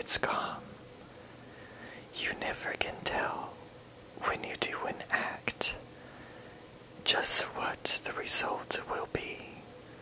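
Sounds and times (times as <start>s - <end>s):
person whispering: 0.0s - 0.7s, 2.1s - 3.6s, 4.2s - 5.8s, 7.0s - 9.6s.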